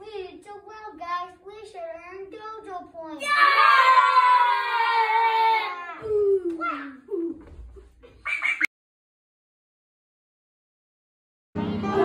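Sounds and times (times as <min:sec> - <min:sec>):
loud held cry: 0:03.2 - 0:06.0
children singing: 0:11.6 - 0:12.0.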